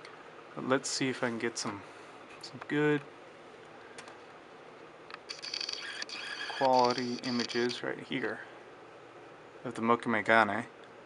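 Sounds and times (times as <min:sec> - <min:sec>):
low room hiss: 0:00.0 - 0:11.0
camera autofocus motor whirring: 0:05.1 - 0:07.8.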